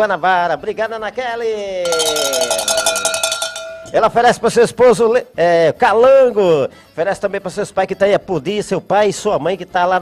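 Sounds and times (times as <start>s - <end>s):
cowbell rattling: 1.8s - 4.4s.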